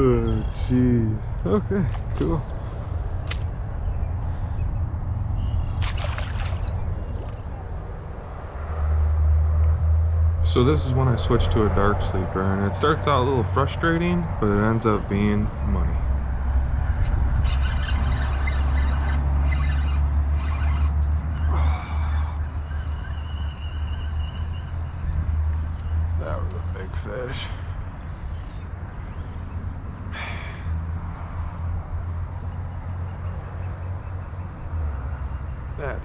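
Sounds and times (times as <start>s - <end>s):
wind rumbling on microphone: 0.0s - 21.8s, 22.4s - 34.6s.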